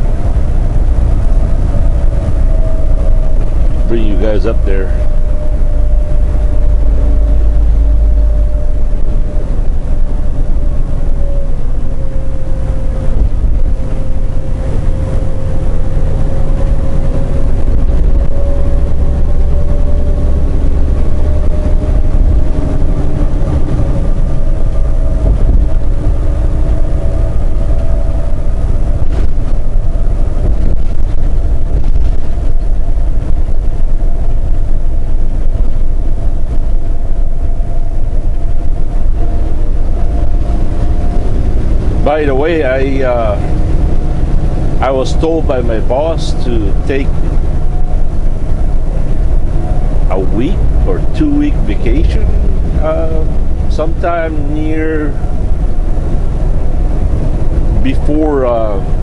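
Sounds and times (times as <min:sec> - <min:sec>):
faint whining tone: 0:00.0 - 0:59.0
road noise: 0:00.0 - 0:59.0
truck diesel engine drone: 0:00.0 - 0:59.0.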